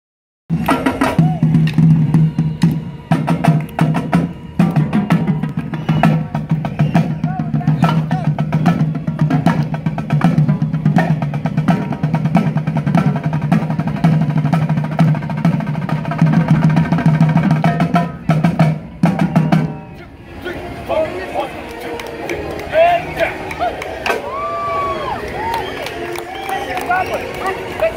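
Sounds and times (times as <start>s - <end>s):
marching snare and tenor drums: 0.5s - 19.8s.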